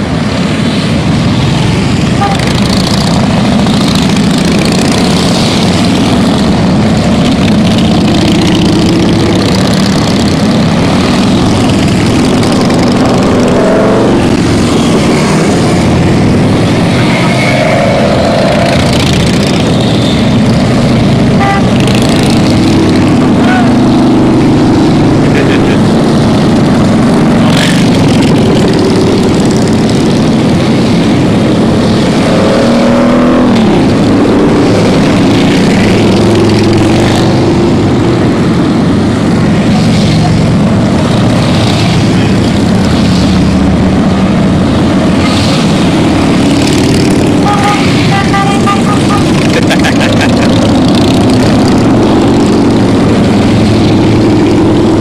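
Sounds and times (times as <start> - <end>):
motorcycle engines revving: 0.0 - 55.0
motorcycles passing: 0.0 - 55.0.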